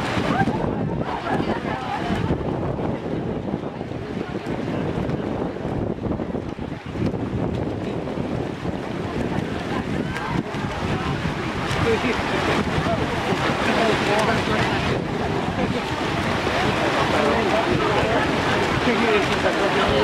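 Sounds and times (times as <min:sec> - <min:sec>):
swimmers splashing: 0:00.0 - 0:05.6, 0:06.4 - 0:20.0
faint crowd voices: 0:00.0 - 0:20.0
wind buffeting microphone: 0:00.0 - 0:20.0.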